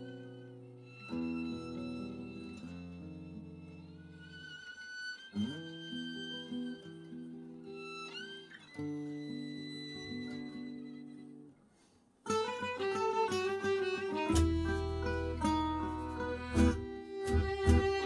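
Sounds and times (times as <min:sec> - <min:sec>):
violin melody: 0:00.0 - 0:11.5, 0:12.3 - 0:18.0
guitar: 0:00.0 - 0:18.0
accordion chords: 0:12.3 - 0:18.0.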